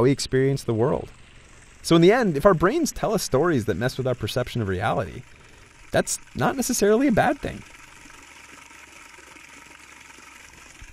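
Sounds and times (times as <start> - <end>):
low steady hum: 0.0 - 10.9.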